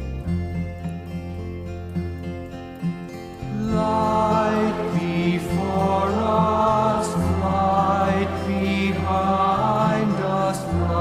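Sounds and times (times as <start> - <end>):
steady low drone: 0.0 - 11.0
person chanting a prayer: 3.6 - 11.0.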